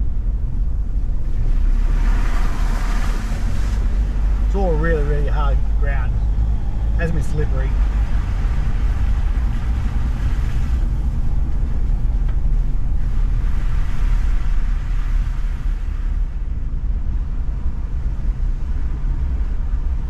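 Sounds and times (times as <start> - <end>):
engine and road rumble: 0.0 - 20.0.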